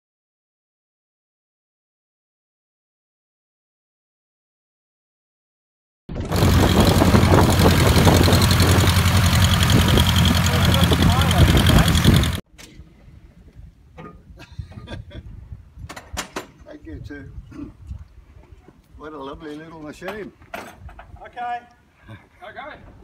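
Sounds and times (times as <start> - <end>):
propeller plane engine drone: 6.2 - 12.4.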